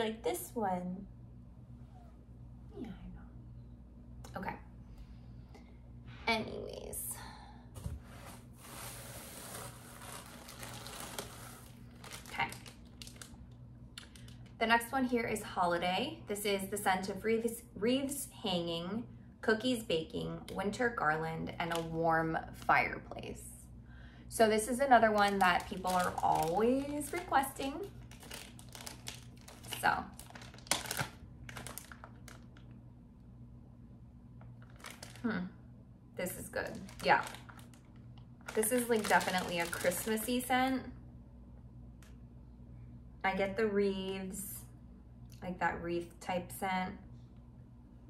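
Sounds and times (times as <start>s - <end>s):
low steady hum: 0.0s - 48.0s
packaging rustling and crinkling: 8.0s - 13.4s, 25.1s - 32.7s, 34.6s - 35.3s, 36.6s - 40.3s.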